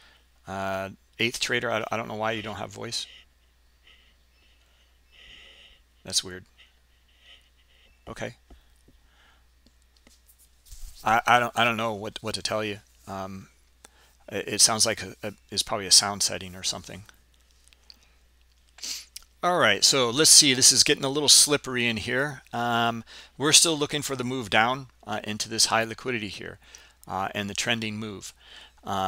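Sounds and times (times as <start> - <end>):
faint breathing: 0.0 - 0.5, 2.4 - 9.6, 13.8 - 14.3, 23.0 - 23.4, 26.6 - 27.1, 28.3 - 28.9
background hiss: 0.0 - 29.0
person speaking: 0.5 - 3.3, 6.0 - 6.7, 8.0 - 8.5, 11.0 - 13.6, 14.3 - 17.2
short breath: 3.0 - 5.9, 23.1 - 23.4, 26.6 - 27.0, 28.4 - 28.8.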